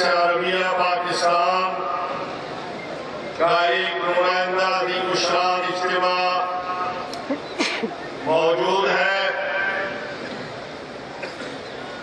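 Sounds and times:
man holding vowel over loudspeakers: 0:03.4 - 0:07.0, 0:08.3 - 0:10.1.

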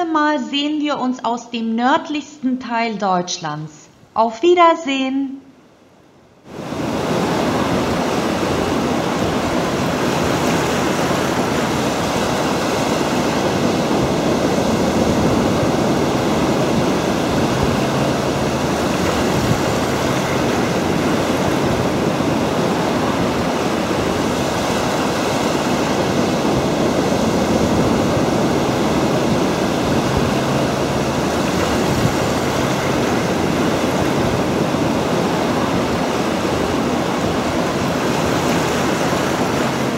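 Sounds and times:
waves breaking: 0:06.4 - 0:39.9
wind on microphone: 0:06.5 - 0:39.9.

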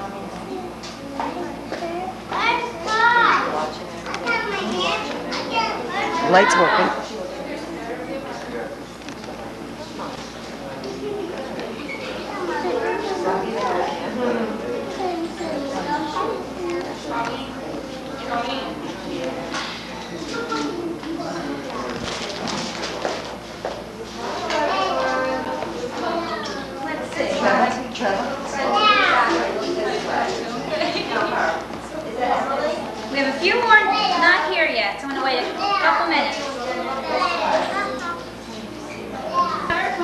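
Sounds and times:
room noise: 0:00.0 - 0:40.0
young children talking and calling: 0:00.0 - 0:40.0.

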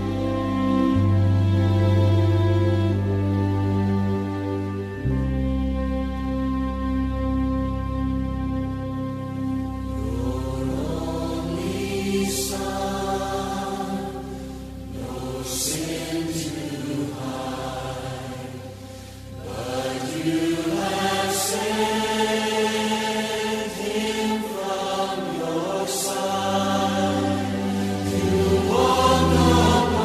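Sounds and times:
choir singing worship song: 0:00.0 - 0:01.3, 0:10.0 - 0:30.0.

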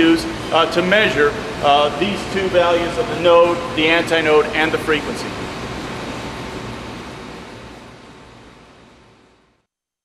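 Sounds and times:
rushing hall noise with rumble: 0:00.0 - 0:09.4.

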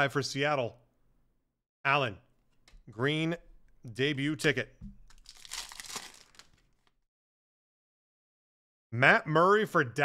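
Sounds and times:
foil wrapper tearing and crinkling: 0:05.0 - 0:07.0.

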